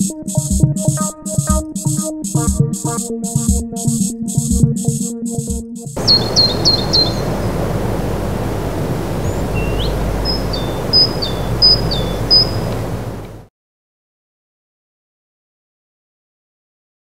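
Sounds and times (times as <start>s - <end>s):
low street background noise: 6.0s - 13.4s
small bird chirping: 6.0s - 13.4s.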